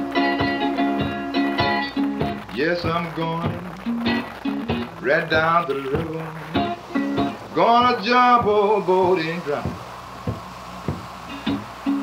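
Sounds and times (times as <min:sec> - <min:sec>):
plucked guitar notes: 0:00.0 - 0:12.0.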